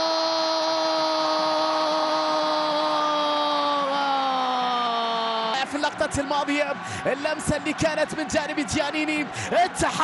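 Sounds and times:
commentator's long goal cry: 0.0s - 5.8s.

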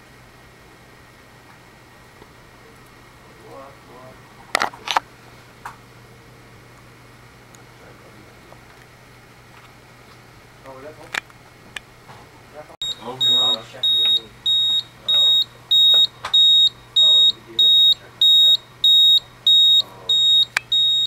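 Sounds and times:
high-pitched alarm beeps: 12.8s - 21.0s.

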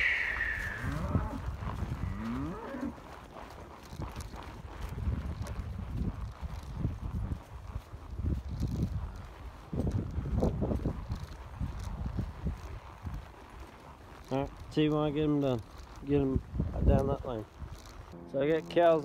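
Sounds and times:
cattle mooing: 0.0s - 3.0s.

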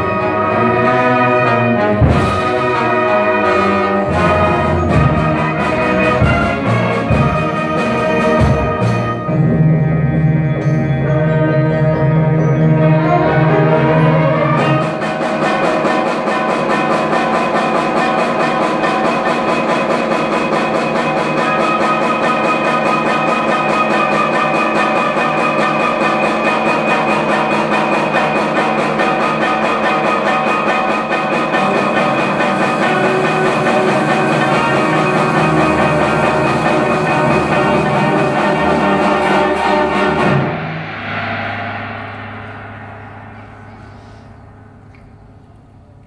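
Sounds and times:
concert band playing held chords: 0.0s - 45.7s.

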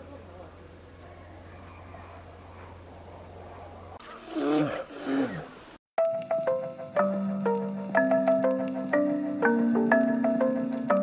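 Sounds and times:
drawn-out falling vocal calls: 0.4s - 5.8s.

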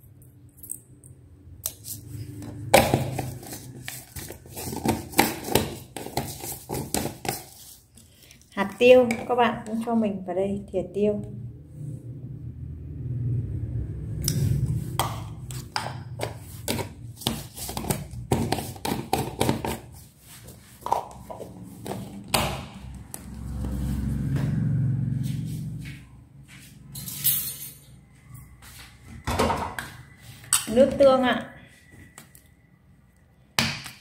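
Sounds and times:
low rumble: 11.2s - 15.0s.

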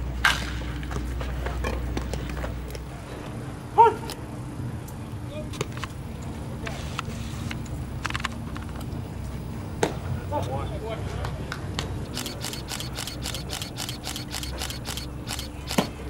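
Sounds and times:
distant players' voices: 0.0s - 16.0s.

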